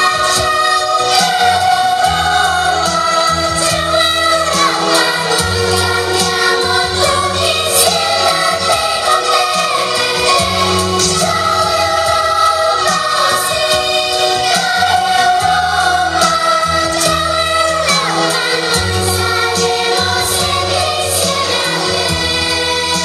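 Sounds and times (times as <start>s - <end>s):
children singing: 0.0s - 23.0s
instrumental backing music: 0.0s - 23.0s.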